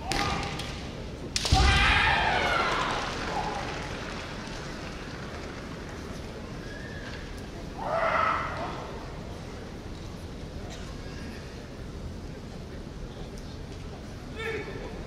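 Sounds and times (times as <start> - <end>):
echoing shouts: 0.0 - 0.7, 1.4 - 4.1, 6.6 - 9.1, 14.3 - 15.0
sharp crack of a strike: 0.0 - 3.6.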